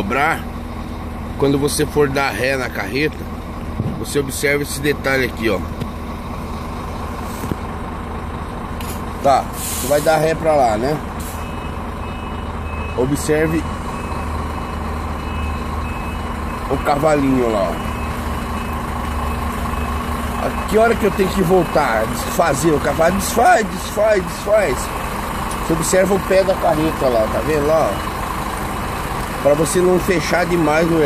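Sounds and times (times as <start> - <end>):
diesel engine idling: 0.0 - 31.0.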